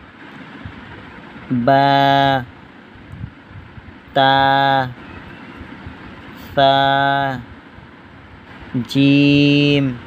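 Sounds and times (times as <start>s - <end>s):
low steady background noise: 0.0s - 10.0s
man reciting a drawn-out syllable: 1.5s - 2.6s, 4.1s - 5.0s, 6.4s - 7.6s, 8.7s - 10.0s.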